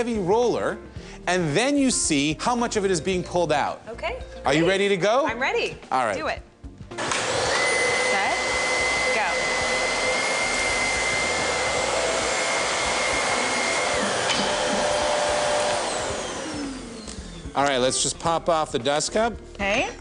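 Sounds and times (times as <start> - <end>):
vacuum cleaners running: 7.0 - 17.8.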